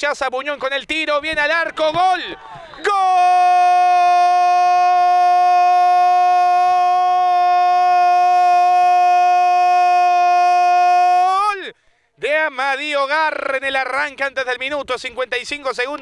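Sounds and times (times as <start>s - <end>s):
commentator shouting goal: 1.1s - 14.6s.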